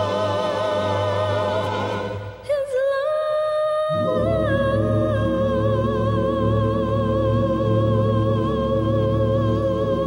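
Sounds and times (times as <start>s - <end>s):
choir singing low voices: 0.0s - 2.8s.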